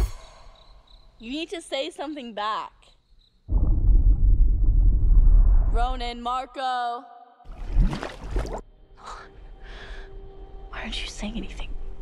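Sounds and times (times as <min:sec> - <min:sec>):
low rumble: 0:03.5 - 0:06.1
woman whispering: 0:10.7 - 0:11.7.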